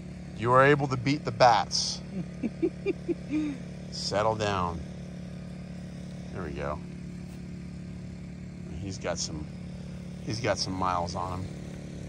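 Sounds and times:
engine humming steadily: 0.0s - 12.0s
man speaking: 8.7s - 9.5s, 10.3s - 11.5s.

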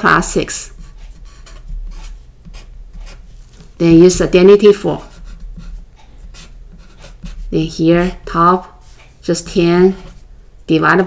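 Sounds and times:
marker writing on paper: 0.1s - 8.2s.

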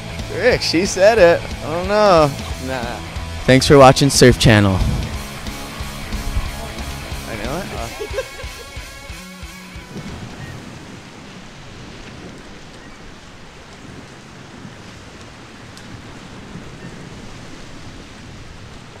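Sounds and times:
guitar music: 0.0s - 10.5s
ocean surf rushing: 0.0s - 19.0s.

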